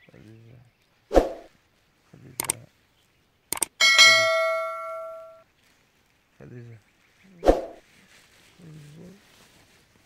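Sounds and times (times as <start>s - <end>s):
quick double click: 3.5s - 3.8s
bright bell ding: 3.8s - 5.4s.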